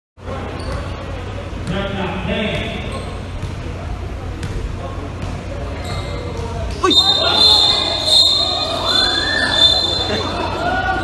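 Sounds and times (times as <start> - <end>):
basketball bouncing on court: 2.5 - 3.7.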